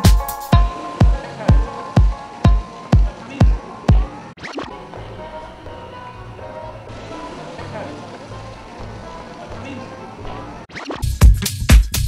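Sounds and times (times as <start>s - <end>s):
kick drum: 0.0s - 4.1s, 11.1s - 12.0s
pulsing bass line: 11.0s - 12.0s.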